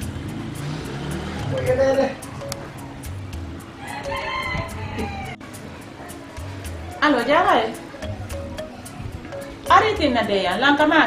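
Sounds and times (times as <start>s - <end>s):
rooster crowing: 3.8s - 5.4s.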